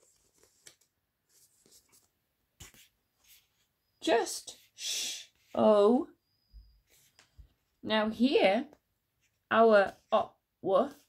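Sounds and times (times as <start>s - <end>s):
paper page rustling: 0.0s - 3.6s.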